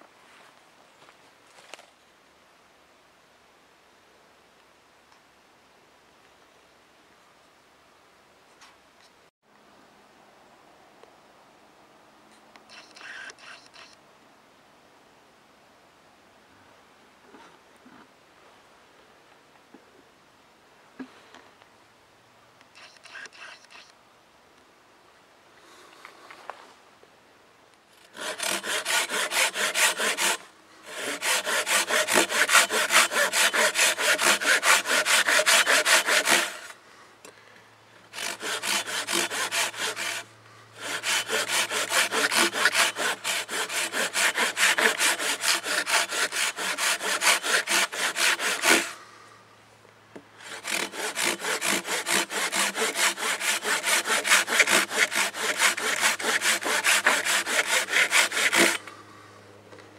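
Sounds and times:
hand saw cutting log: 12.7s - 13.9s, 22.8s - 23.8s, 28.0s - 36.8s, 38.1s - 49.0s, 50.4s - 59.0s.

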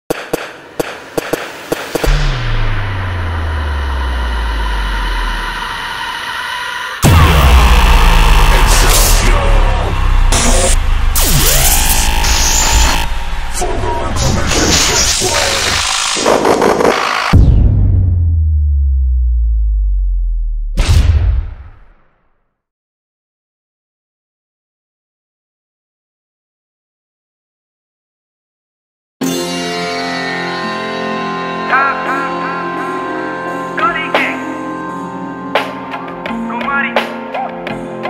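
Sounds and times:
deep boom with falling drone: 2.0s - 5.8s, 7.0s - 15.4s, 17.3s - 21.9s
deep synthesized bass note: 2.0s - 5.8s, 7.0s - 14.8s, 17.3s - 21.3s.

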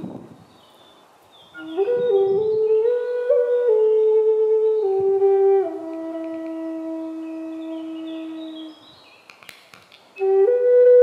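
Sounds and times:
flute holding long low note: 1.5s - 8.9s, 10.2s - 11.0s
faint clicks: 5.8s - 6.6s.

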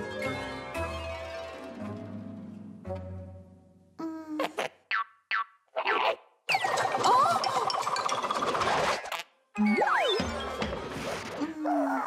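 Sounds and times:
light music: 0.0s - 4.0s.

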